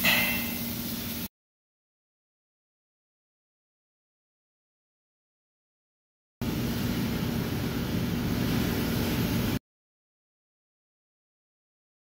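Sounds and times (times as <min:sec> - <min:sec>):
machine hiss: 0:00.0 - 0:01.3
low machine hum: 0:06.4 - 0:09.6.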